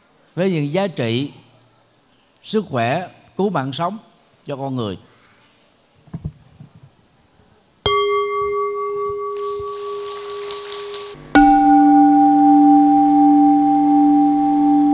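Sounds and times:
bowl bell ringing: 0:07.9 - 0:14.9.

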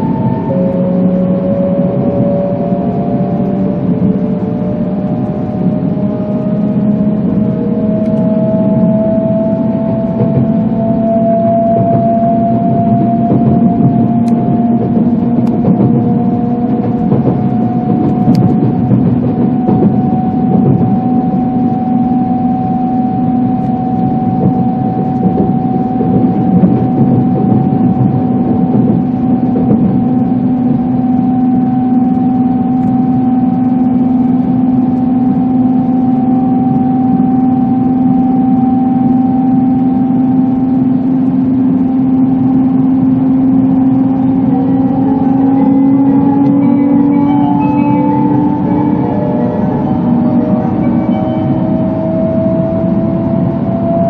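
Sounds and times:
traction motors whining: 0:00.0 - 0:54.0
train running rumble: 0:00.0 - 0:54.0.

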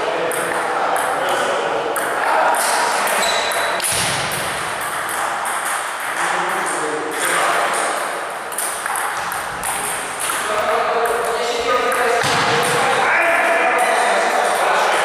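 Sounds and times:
table tennis balls clicking: 0:00.3 - 0:13.0.

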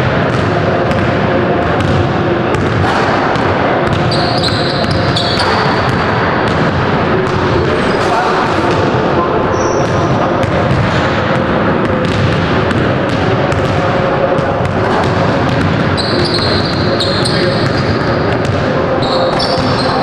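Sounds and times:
indistinct voices: 0:00.0 - 0:20.0
basketballs bouncing on hardwood: 0:09.8 - 0:13.8.

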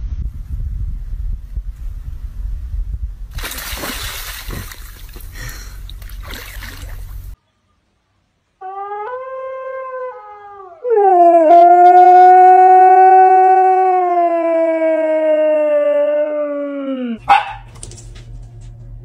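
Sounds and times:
dog howling: 0:08.6 - 0:17.6.

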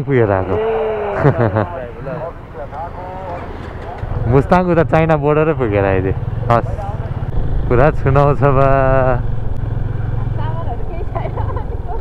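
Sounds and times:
motorcycle engine running: 0:03.5 - 0:12.0.

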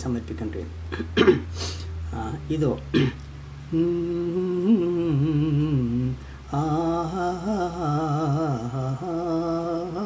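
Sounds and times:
man humming a melody: 0:03.7 - 0:10.0.

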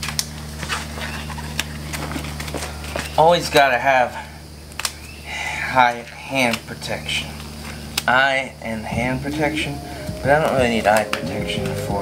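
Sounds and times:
steady low hum: 0:00.0 - 0:12.0
footsteps on concrete floor: 0:08.8 - 0:12.0.

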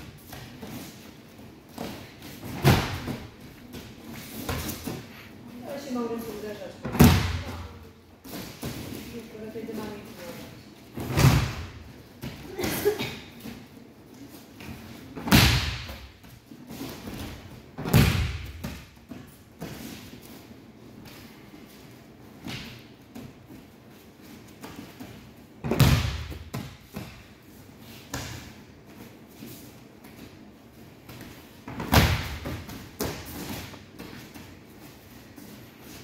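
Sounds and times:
bodies thudding on mats: 0:01.7 - 0:05.1.

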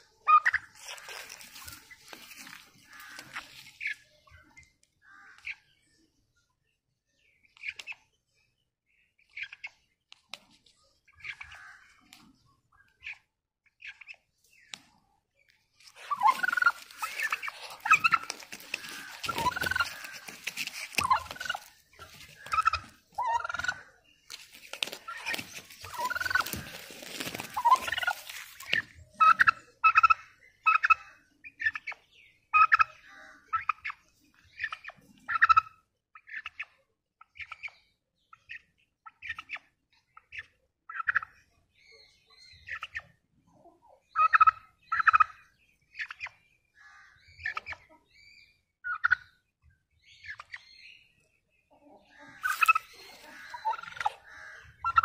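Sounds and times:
turkey gobbling: 0:00.2 - 0:04.0, 0:15.9 - 0:31.9, 0:32.5 - 0:34.0, 0:34.6 - 0:36.6, 0:44.2 - 0:45.4, 0:48.9 - 0:49.3, 0:52.2 - 0:55.0.

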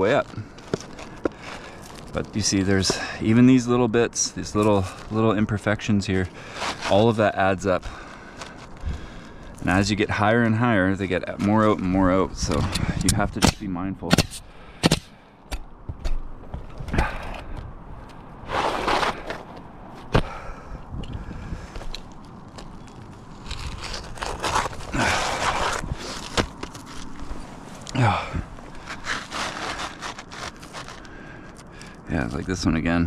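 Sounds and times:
shingles scraping and rubbing: 0:00.0 - 0:14.4, 0:18.4 - 0:20.4, 0:21.7 - 0:32.8.

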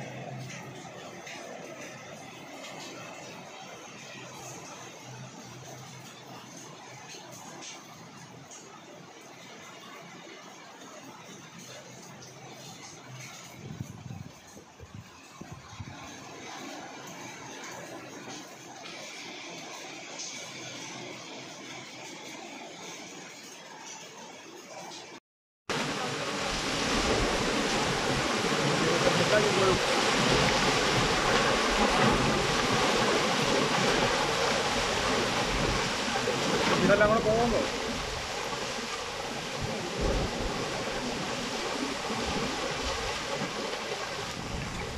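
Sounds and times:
outdoor wind noise: 0:00.0 - 0:44.9
water and debris rushing roar: 0:13.0 - 0:21.9, 0:25.7 - 0:44.9.

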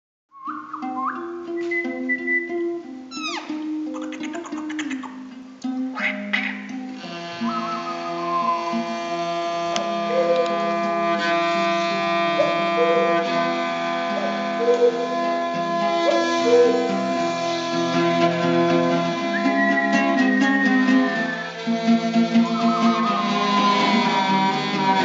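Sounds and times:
high whistle-like tones: 0:00.3 - 0:03.6, 0:07.3 - 0:09.0, 0:19.2 - 0:25.0
bowed two-string fiddle: 0:00.4 - 0:25.0
small plucked lute: 0:00.4 - 0:25.0
overtone-rich drone: 0:06.7 - 0:25.0.

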